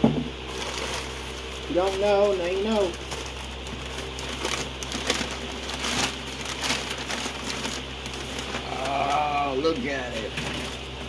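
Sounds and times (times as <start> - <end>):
tissue paper crumpling: 0.5 - 10.9.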